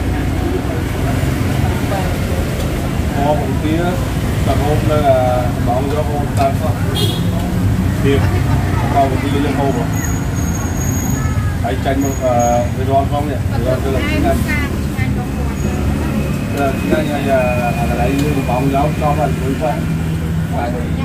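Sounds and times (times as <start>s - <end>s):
road traffic rumble: 0.0s - 21.0s
voices talking: 0.0s - 21.0s.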